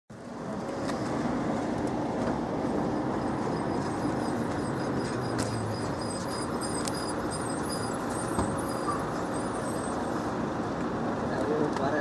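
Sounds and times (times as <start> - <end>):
vehicle engine idling: 0.1 - 12.0.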